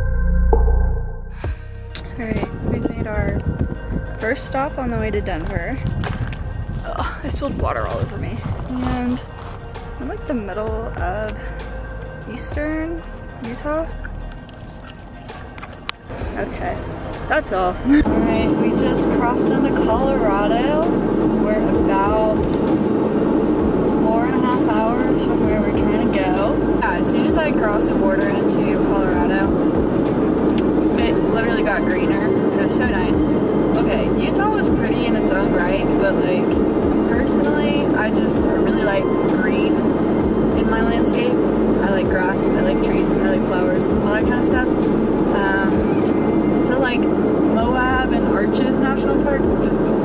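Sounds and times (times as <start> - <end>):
car road and engine noise: 0.0 - 50.0
woman talking: 2.0 - 3.5, 4.1 - 5.9, 6.8 - 9.3, 10.0 - 11.5, 12.3 - 14.0, 16.4 - 22.6, 23.9 - 29.6, 31.0 - 39.8, 40.5 - 46.0, 46.6 - 50.0.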